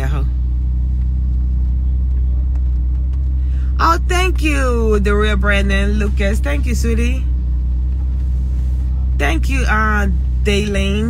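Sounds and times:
woman's voice: 0.0 - 0.4, 3.7 - 7.3, 9.2 - 11.0
car cabin engine drone: 0.0 - 11.0.

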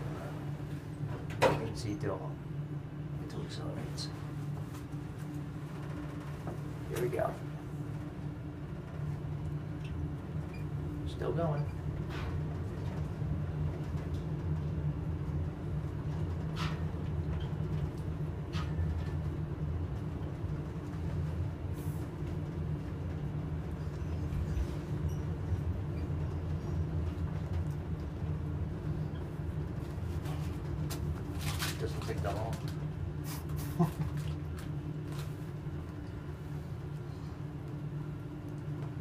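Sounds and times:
elevator rumble: 0.0 - 39.0.

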